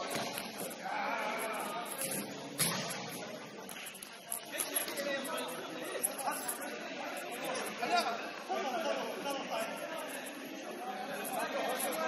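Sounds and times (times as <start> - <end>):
players calling and chatting: 0.0 - 12.0.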